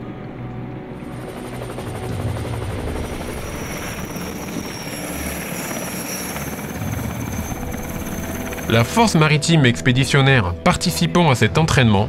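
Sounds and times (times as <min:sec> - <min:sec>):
helicopter turbine noise: 0:00.0 - 0:11.8
helicopter rotor beat: 0:00.3 - 0:11.8.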